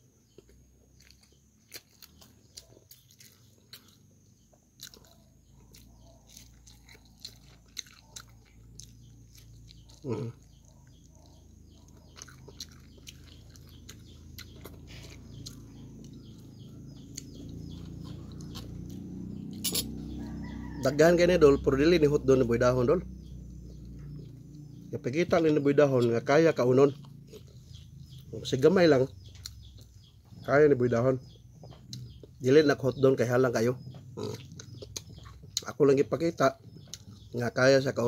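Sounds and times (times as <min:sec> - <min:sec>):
person chewing crunchy food: 0:00.2 - 0:20.5, 0:25.4 - 0:30.4, 0:33.9 - 0:35.8, 0:36.6 - 0:37.4.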